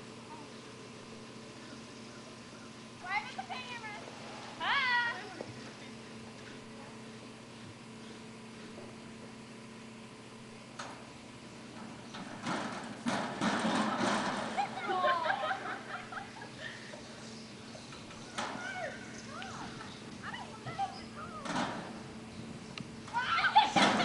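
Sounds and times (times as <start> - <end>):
steady electrical hum: 0.0 - 24.0
distant children calling out: 0.2 - 7.2, 14.3 - 24.0.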